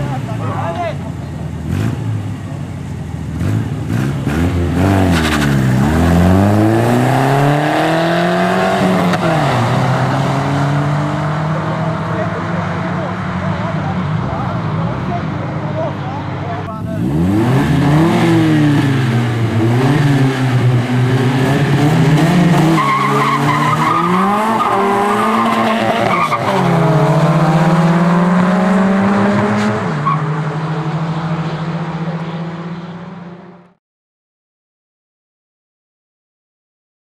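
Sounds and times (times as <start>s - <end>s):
car engine accelerating through gears: 1.6s - 2.6s, 3.2s - 33.8s.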